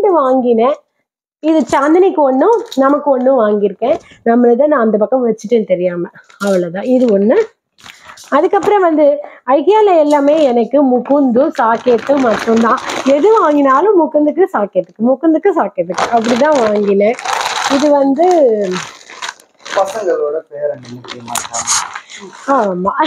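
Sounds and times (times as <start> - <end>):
woman talking: 0.0 - 0.8, 1.4 - 7.5, 8.3 - 18.9, 22.1 - 23.0
plastic bags crinkling: 7.8 - 8.8, 11.4 - 13.8, 15.9 - 20.2, 20.8 - 22.8.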